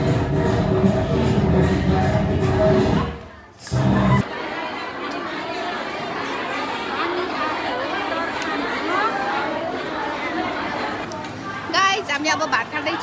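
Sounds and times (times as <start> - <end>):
music: 0.0 - 4.2
women chattering in a hall: 0.0 - 13.0.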